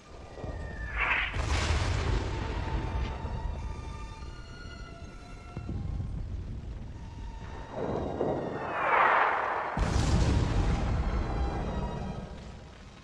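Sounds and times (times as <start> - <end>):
deep rumble: 0.0 - 13.0
explosion: 0.4 - 3.4, 7.7 - 12.3
rushing sound: 0.6 - 1.4, 8.1 - 11.1.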